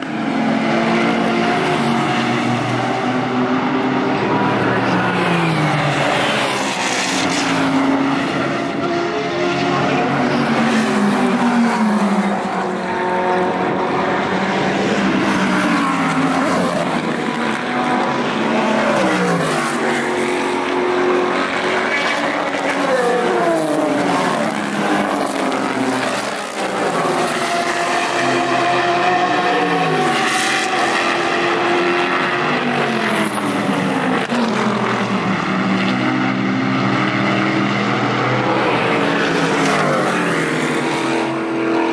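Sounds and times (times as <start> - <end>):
race cars passing at full throttle: 0.0 - 41.9.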